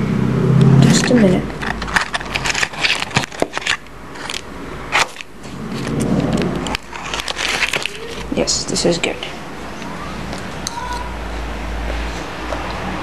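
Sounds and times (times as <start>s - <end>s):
foil wrapper crinkling: 1.6s - 8.5s.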